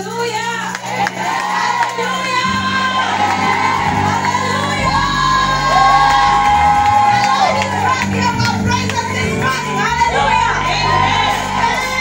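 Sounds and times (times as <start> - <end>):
band with bass and keyboard: 0.0 - 12.0
congregation cheering and shouting: 0.0 - 12.0
many voices singing: 0.8 - 8.4, 9.2 - 12.0.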